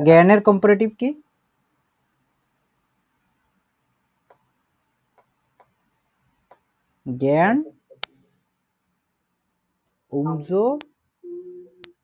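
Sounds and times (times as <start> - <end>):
person making wordless vocal sounds: 11.2 - 12.0.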